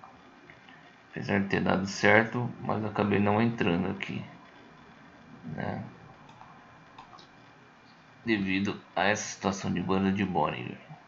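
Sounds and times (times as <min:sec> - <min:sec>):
computer mouse clicks: 0:06.2 - 0:07.5.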